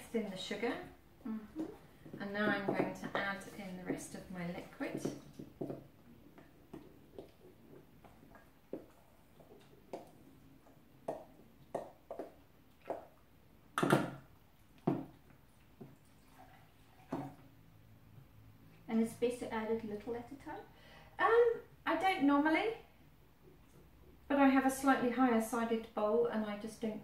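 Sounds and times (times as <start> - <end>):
wet stirring: 1.5 - 17.6.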